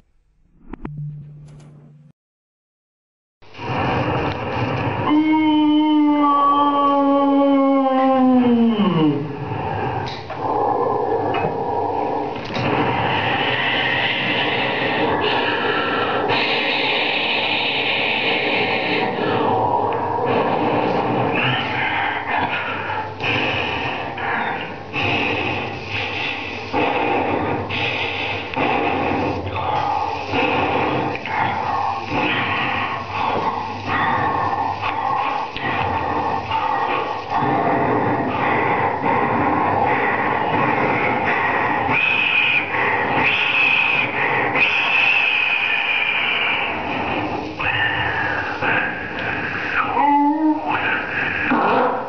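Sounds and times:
vocal mouth and breath noises: 8.8s - 52.0s.

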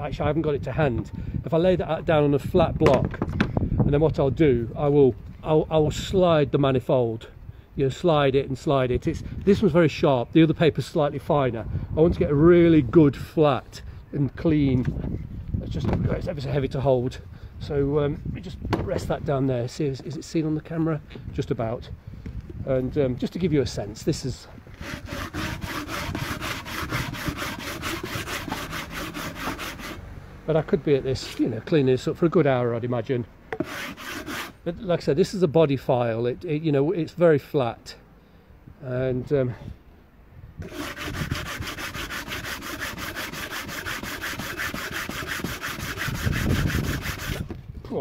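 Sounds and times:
file rasping on metal: 24.8s - 30.0s, 33.6s - 34.6s, 40.6s - 47.5s.

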